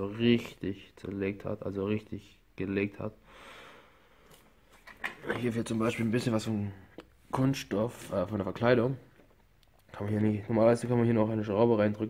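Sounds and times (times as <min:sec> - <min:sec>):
man speaking: 0:00.0 - 0:03.2, 0:05.2 - 0:09.2, 0:09.8 - 0:12.0
short in-breath: 0:03.2 - 0:04.5.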